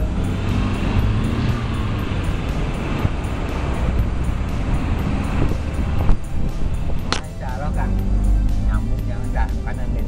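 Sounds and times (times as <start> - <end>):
wind buffeting microphone: 0.0 - 9.2
vehicle road and engine noise: 0.0 - 10.0.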